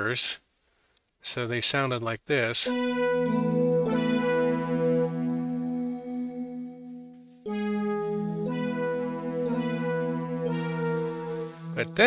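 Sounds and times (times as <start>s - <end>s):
held synthesizer chord: 2.7s - 12.0s.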